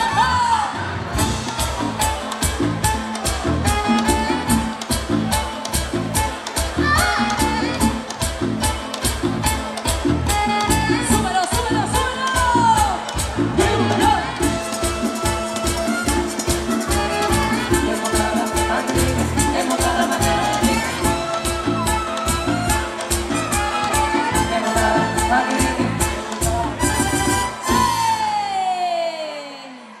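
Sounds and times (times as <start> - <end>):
dance orchestra playing latin song: 0.0 - 29.3.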